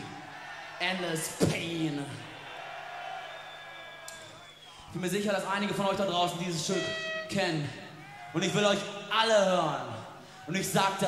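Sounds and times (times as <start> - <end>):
faint crowd: 0.0 - 11.0.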